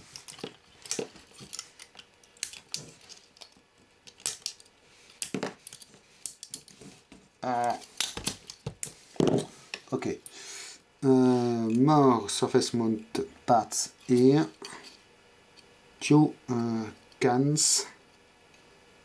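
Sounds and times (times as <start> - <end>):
wire cutters snipping wires: 0.2 - 4.6.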